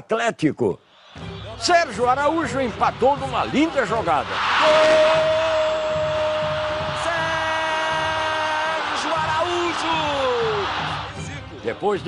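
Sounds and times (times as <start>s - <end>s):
stadium crowd noise: 0.9s - 12.0s.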